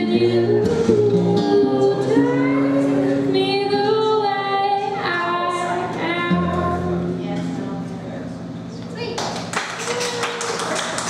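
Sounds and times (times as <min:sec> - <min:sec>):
music: 0:00.0 - 0:08.6
audience clapping: 0:09.1 - 0:11.0.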